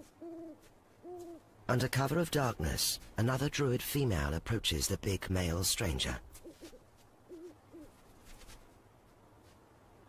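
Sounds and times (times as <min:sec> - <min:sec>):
owl hooting: 0:00.0 - 0:01.4, 0:06.3 - 0:08.0.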